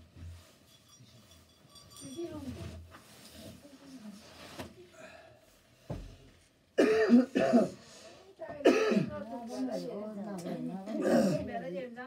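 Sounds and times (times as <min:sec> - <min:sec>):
person coughing harshly: 0:06.8 - 0:07.8, 0:08.6 - 0:09.1, 0:10.9 - 0:11.5.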